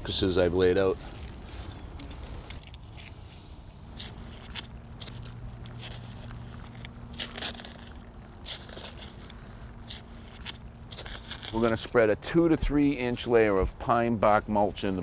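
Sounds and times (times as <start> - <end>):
trowel scraping soil: 2.1 - 12.0.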